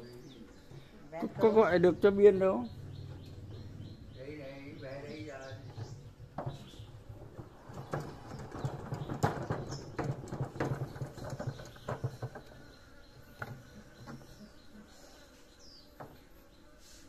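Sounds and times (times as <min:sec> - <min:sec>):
bird chirps: 0:00.0 - 0:16.8
honey extractor rattling: 0:05.1 - 0:14.4.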